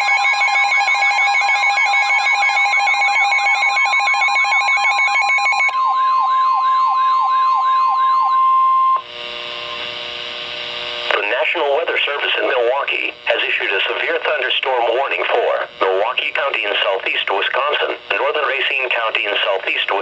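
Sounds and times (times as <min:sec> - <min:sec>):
warbling siren: 0:00.0 - 0:09.9
steady alarm tone: 0:00.0 - 0:19.6.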